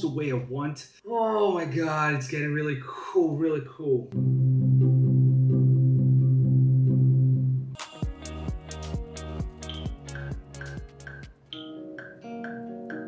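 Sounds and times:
sustained low synth chord: 0:04.2 - 0:07.7
kick drums and hi-hats beat: 0:07.8 - 0:11.5.

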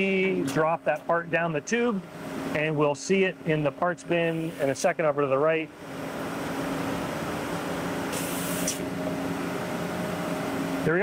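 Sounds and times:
machine hum: 0:00.0 - 0:11.0
cutting oil spraying hiss: 0:08.1 - 0:08.9.

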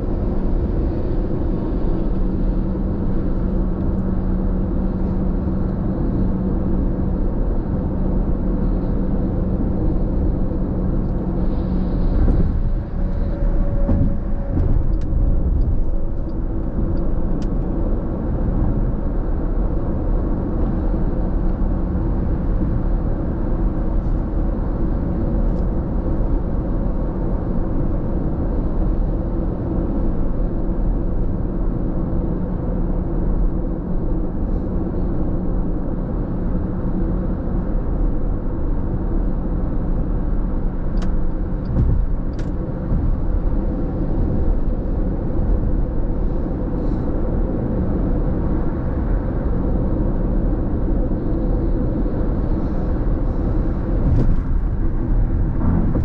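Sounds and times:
low steady hum: 0:00.0 - 0:56.0
road and engine noise inside car: 0:00.0 - 0:56.0.

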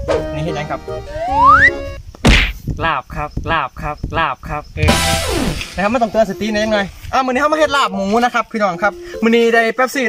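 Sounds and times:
loud comedy whack: 0:02.2 - 0:02.6, 0:04.8 - 0:05.9.

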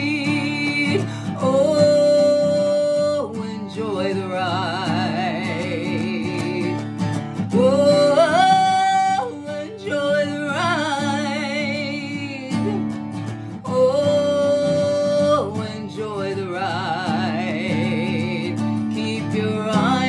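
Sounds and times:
strummed acoustic guitar: 0:00.0 - 0:20.0
woman singing with vibrato: 0:00.0 - 0:20.0.

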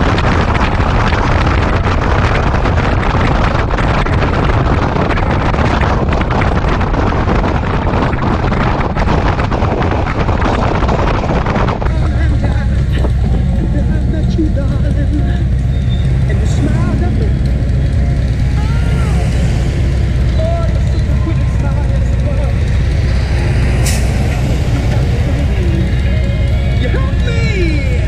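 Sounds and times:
motorcycle engines droning: 0:00.0 - 0:28.0.

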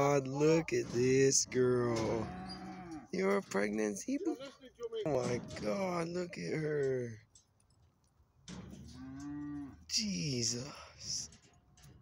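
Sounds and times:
cow mooing: 0:01.9 - 0:03.2, 0:08.8 - 0:09.9.

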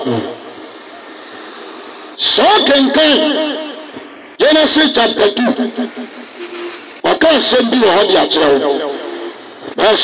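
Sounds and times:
road traffic driving past: 0:00.0 - 0:10.0.

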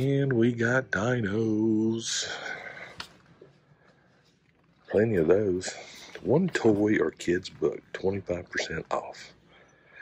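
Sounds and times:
man's voice: 0:00.0 - 0:03.0, 0:04.9 - 0:09.4.

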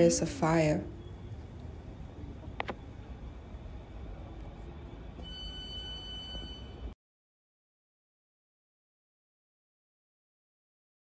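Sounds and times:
train rumbling at platform: 0:00.0 - 0:07.0
high-pitched tone: 0:05.2 - 0:07.0.

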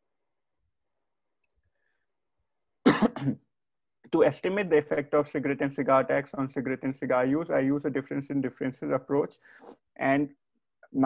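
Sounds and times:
short cough: 0:02.9 - 0:03.4.

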